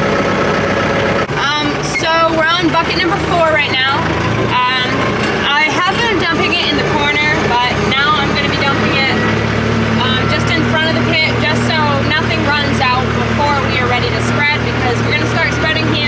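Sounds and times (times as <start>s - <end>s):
tractor diesel engine running: 0.0s - 16.0s
woman talking: 1.4s - 16.0s.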